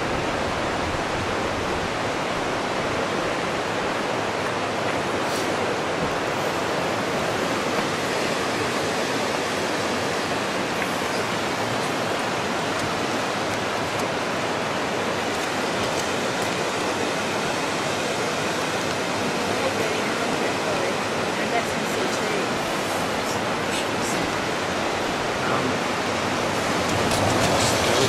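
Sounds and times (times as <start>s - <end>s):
river water rushing: 0.0s - 28.0s.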